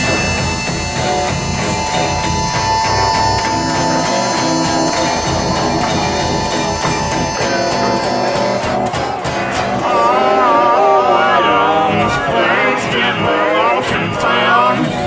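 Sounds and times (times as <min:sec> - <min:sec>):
long held high note: 0:00.0 - 0:09.8
rock guitar playing: 0:00.0 - 0:10.0.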